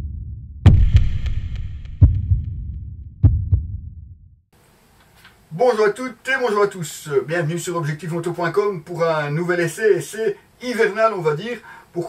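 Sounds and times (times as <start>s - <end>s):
deep low thuds: 0.0s - 4.4s
low rumble: 0.0s - 4.4s.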